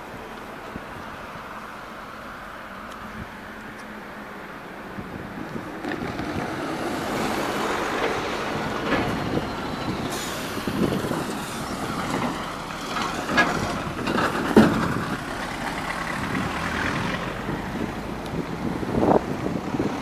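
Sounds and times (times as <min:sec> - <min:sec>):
vehicle engine noise: 0:00.0 - 0:20.0
tyre hiss on wet road: 0:10.0 - 0:13.2.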